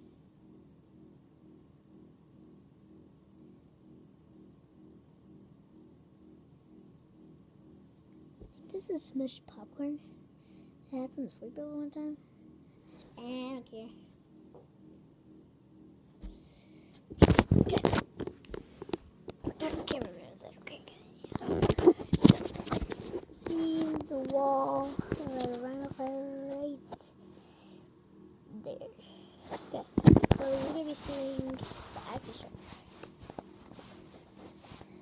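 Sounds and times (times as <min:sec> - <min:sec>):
knocks and thumps on carpet: 0:16.2 - 0:16.4.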